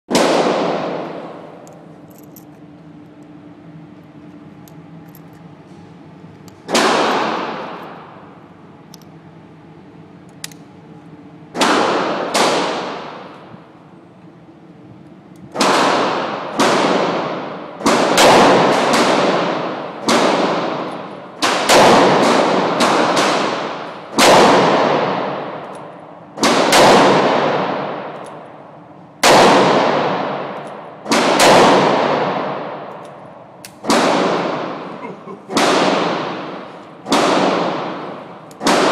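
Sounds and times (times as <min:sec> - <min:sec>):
gunshots ringing off walls: 0:00.1 - 0:01.3, 0:06.7 - 0:08.0, 0:11.6 - 0:13.4, 0:15.6 - 0:25.7, 0:26.4 - 0:28.2, 0:29.2 - 0:33.0, 0:33.8 - 0:34.9, 0:35.5 - 0:38.9.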